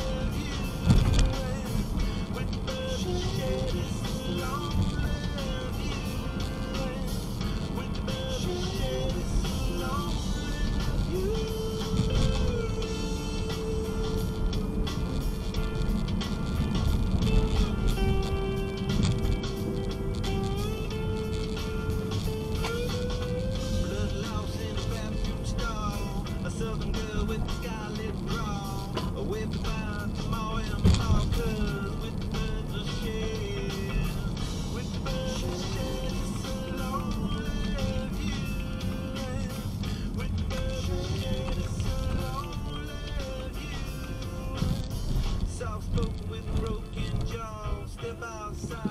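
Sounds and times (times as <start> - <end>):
radio music in a car: 0.0 - 48.9
road and engine noise: 0.0 - 48.9.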